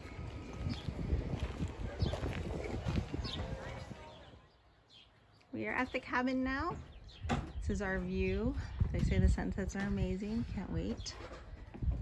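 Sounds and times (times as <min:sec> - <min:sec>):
footsteps on wooden boardwalk: 0:00.0 - 0:04.3
people talking: 0:01.8 - 0:04.5, 0:05.6 - 0:06.8, 0:07.6 - 0:11.2.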